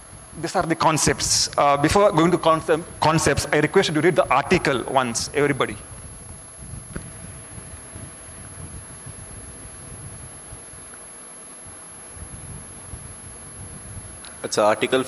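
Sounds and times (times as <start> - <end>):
low rumble and hiss: 0.0 - 15.0.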